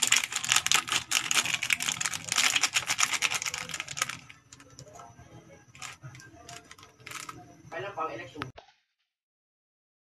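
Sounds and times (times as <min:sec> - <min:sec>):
plastic sachet crinkling: 0:00.0 - 0:05.0, 0:05.7 - 0:07.5.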